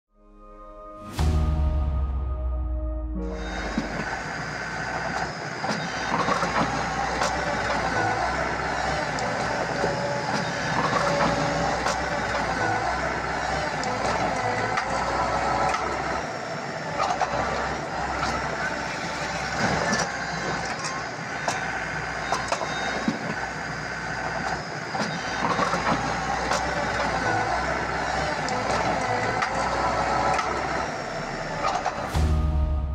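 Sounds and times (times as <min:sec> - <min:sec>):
loader engine and hydraulics whine: 0:00.2 - 0:32.9.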